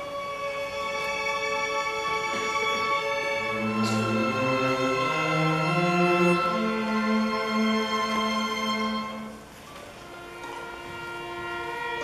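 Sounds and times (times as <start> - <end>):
string orchestra sustained chord: 0.0 - 12.0.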